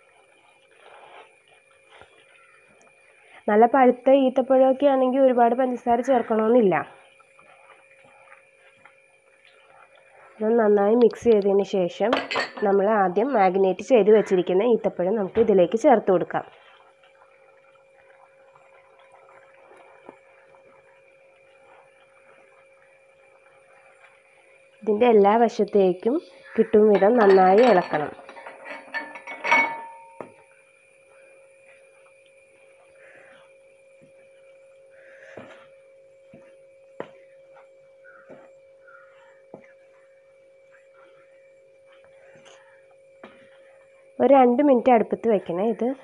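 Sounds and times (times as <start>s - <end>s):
faint steady hum: 0.0s - 46.0s
wooden spatula stirring in pan: 7.0s - 10.6s, 16.4s - 24.8s.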